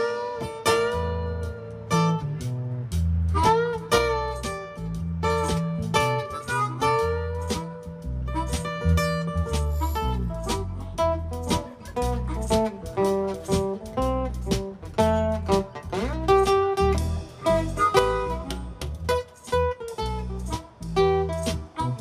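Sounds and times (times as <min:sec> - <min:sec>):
bass and drums: 0:00.0 - 0:22.0
strummed acoustic guitar: 0:00.0 - 0:22.0
harmonica solo: 0:03.3 - 0:13.6, 0:17.1 - 0:19.9.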